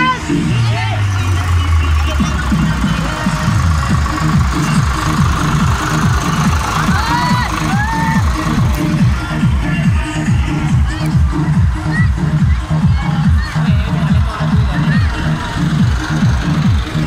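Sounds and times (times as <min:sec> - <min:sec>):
loud dance music: 0:00.0 - 0:17.0
tractor engine running: 0:00.0 - 0:17.0.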